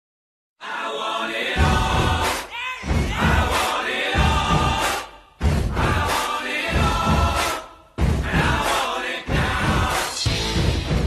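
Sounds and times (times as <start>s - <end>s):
concert crowd cheering and chanting: 0.6s - 10.8s
music with heavy low beat: 8.0s - 8.7s, 9.3s - 11.0s.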